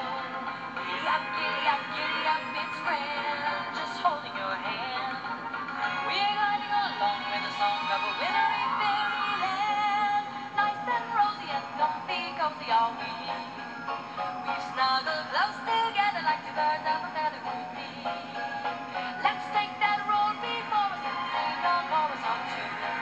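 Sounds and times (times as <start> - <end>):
band playing christmas music: 0.0 - 9.8, 17.2 - 23.0.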